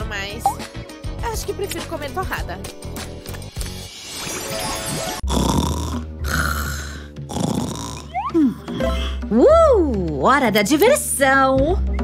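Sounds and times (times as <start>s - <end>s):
light background music: 0.0s - 12.0s
cartoon snoring: 5.2s - 8.8s.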